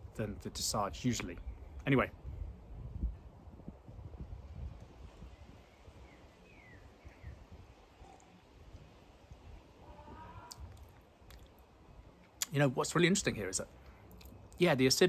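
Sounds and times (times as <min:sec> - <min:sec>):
faint bird chirps: 0:05.2 - 0:08.5.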